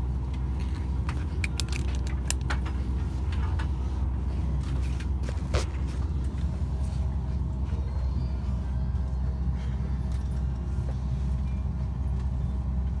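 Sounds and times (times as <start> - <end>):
airliner cabin rumble: 0.0 - 13.0.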